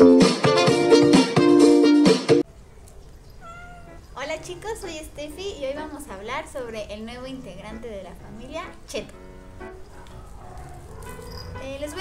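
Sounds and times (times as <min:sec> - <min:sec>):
kitten meowing: 0:03.3 - 0:04.7.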